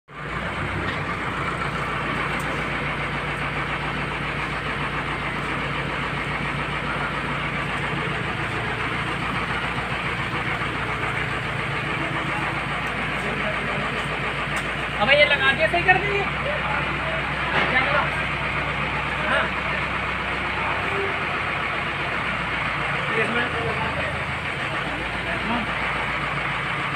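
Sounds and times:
crane engine humming: 0.1 - 26.9.

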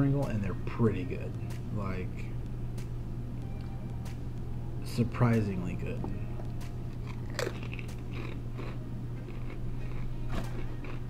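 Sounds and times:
low hum: 0.0 - 11.0
potato chip crunching: 7.0 - 11.0.

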